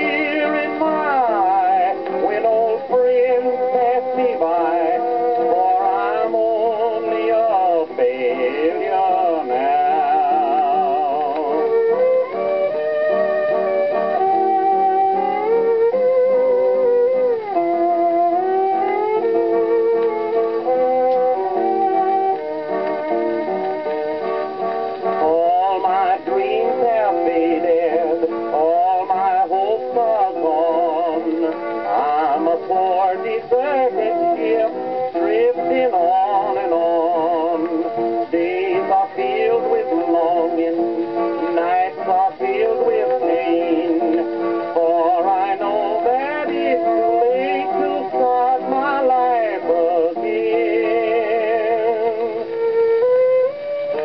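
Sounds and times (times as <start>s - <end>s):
man singing with vibrato: 0.0s - 12.4s, 25.0s - 52.6s
gramophone playing country song: 0.0s - 54.0s.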